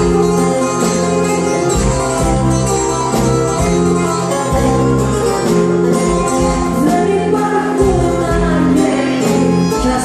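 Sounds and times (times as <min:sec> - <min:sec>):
live band playing: 0:00.0 - 0:10.0
person singing: 0:06.7 - 0:10.0.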